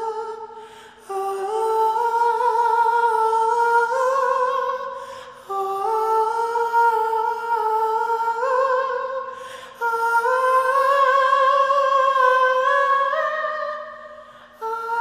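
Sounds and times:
young man singing wordless melody: 0.0 - 15.0.

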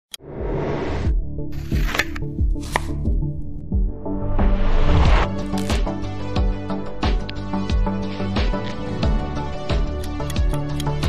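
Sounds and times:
background music with beat: 1.2 - 11.0
scissors cutting greens: 10.0 - 11.0.

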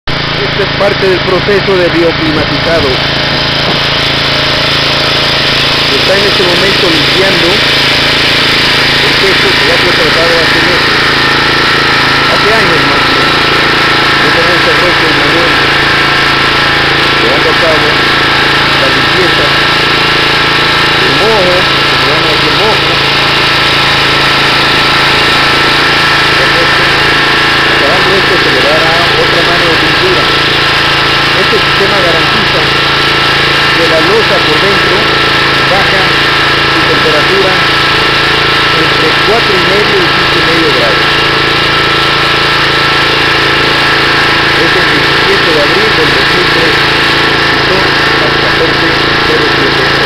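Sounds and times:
pressure washer motor drone: 0.0 - 50.0
water jet on concrete: 0.1 - 50.0.

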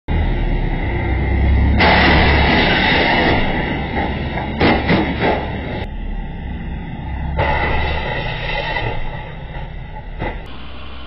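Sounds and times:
road traffic rumble: 0.1 - 11.0
sharp bangs: 1.5 - 10.5.

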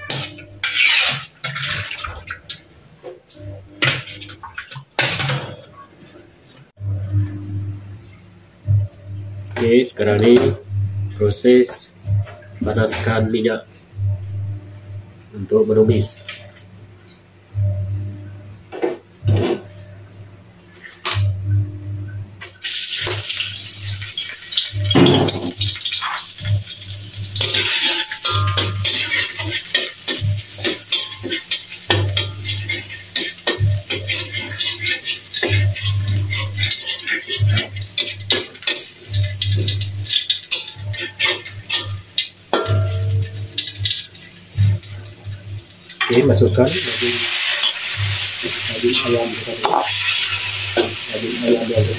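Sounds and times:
metal spatula scraping wok: 0.0 - 1.9, 23.8 - 44.0
garlic sizzling in hot oil: 22.6 - 51.9.

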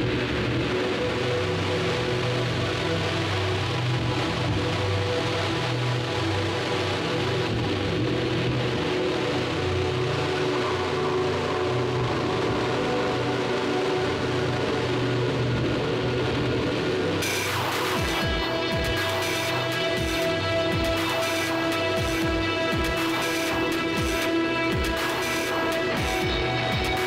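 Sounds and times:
sustained droning electronic chord: 0.0 - 27.0.

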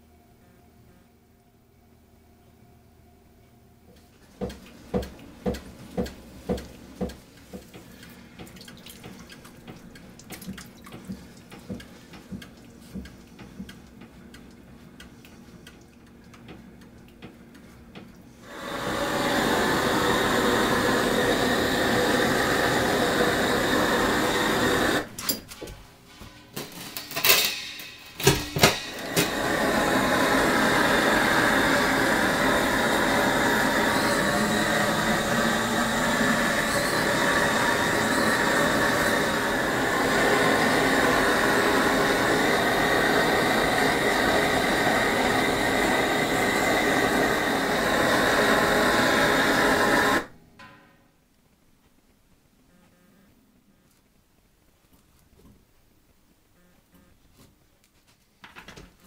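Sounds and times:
gas blowtorch hissing: 18.4 - 25.2, 28.1 - 50.3.

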